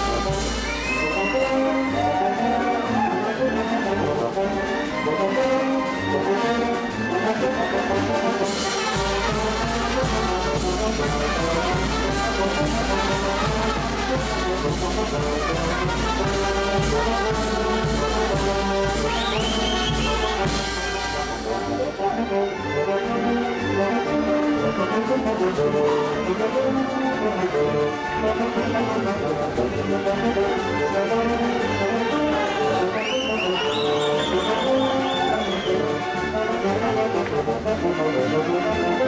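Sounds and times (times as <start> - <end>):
percussion beat: 0.0 - 2.3, 8.4 - 22.1
brass band playing dance music: 0.0 - 39.0.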